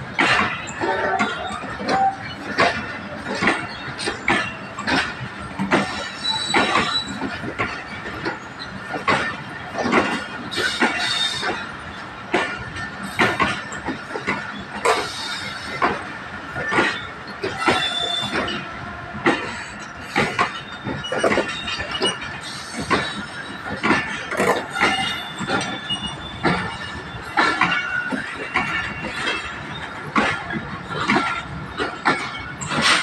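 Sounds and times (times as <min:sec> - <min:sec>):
train wheels clacking over rail joints: 0:00.0 - 0:33.0
high wheel squeals: 0:00.4 - 0:09.6, 0:10.2 - 0:12.0, 0:14.5 - 0:33.0.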